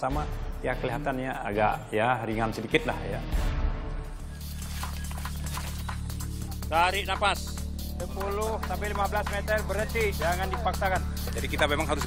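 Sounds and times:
low bass drone music: 0:00.0 - 0:12.0.

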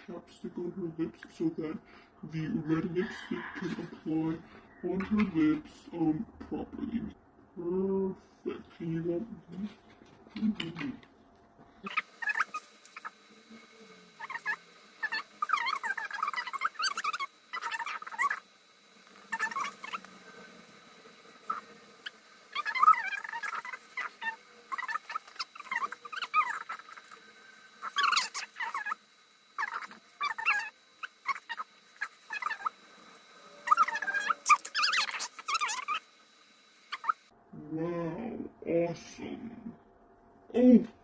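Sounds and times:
squeaky whines: 0:11.8 - 0:37.3.

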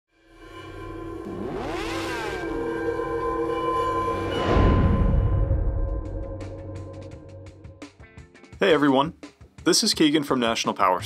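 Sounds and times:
droning chord: 0:00.1 - 0:08.0
rising and falling pitch sweeps: 0:00.3 - 0:07.8.

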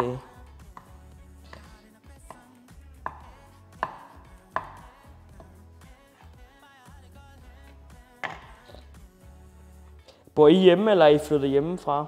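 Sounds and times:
knife chopping on wooden board: 0:01.5 - 0:05.6, 0:08.2 - 0:08.8.

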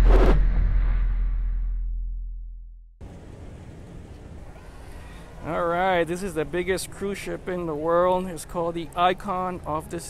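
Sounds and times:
low rumbling whoosh: 0:00.0 - 0:02.9.

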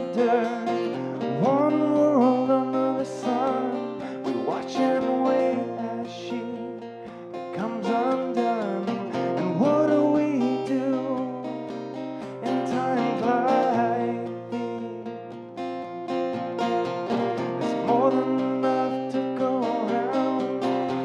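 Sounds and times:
man singing: 0:00.0 - 0:15.6, 0:16.3 - 0:21.0
acoustic guitar strumming: 0:00.0 - 0:21.0.

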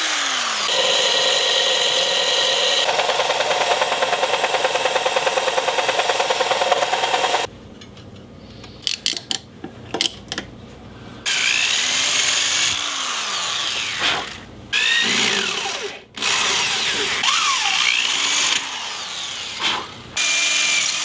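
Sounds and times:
electric drill boring wood: 0:00.0 - 0:07.5, 0:11.3 - 0:21.0.

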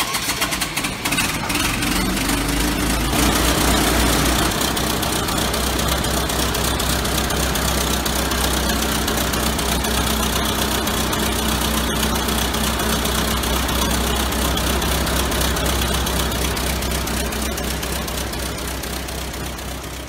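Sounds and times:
starter cranking engine: 0:00.0 - 0:20.0
truck engine idling: 0:00.0 - 0:20.0.

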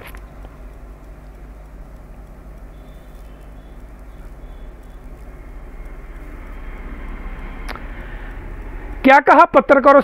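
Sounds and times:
vehicle engine rumbling: 0:00.0 - 0:10.0.

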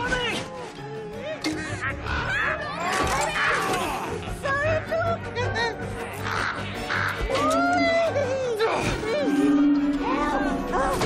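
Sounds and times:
orchestral film music: 0:00.0 - 0:11.0
crow cawing: 0:06.2 - 0:07.8.

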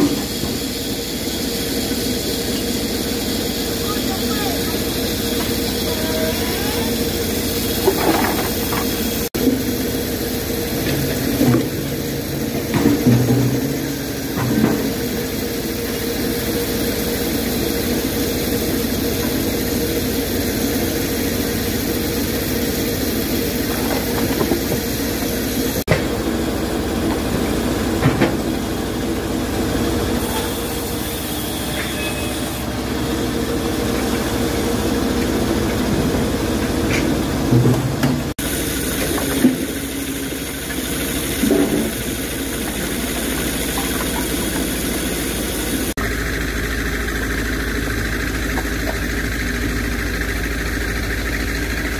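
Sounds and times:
machinery engines running: 0:00.0 - 0:51.9.

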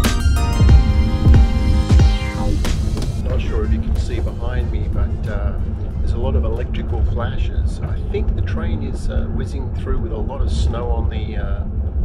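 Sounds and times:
train running low rumble: 0:00.7 - 0:12.0
man talking: 0:03.2 - 0:11.7.

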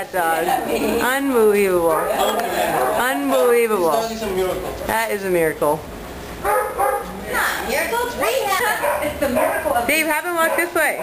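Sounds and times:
dog barking: 0:01.9 - 0:03.1, 0:06.4 - 0:07.2, 0:08.6 - 0:11.0.

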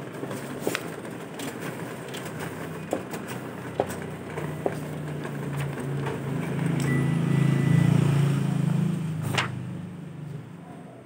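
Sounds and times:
copier humming: 0:00.0 - 0:10.6
copier clicks: 0:01.4 - 0:07.8.

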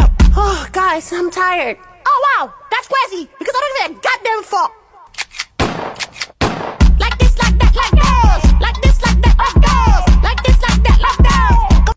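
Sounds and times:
hip-hop beat with heavy bass: 0:00.0 - 0:01.3, 0:06.8 - 0:11.9
gunshot sound effects: 0:05.6 - 0:06.9.

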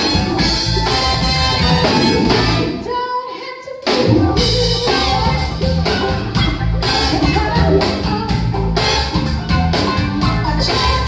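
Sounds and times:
live band playing: 0:00.0 - 0:11.0
person singing: 0:02.6 - 0:08.6, 0:09.6 - 0:11.0.

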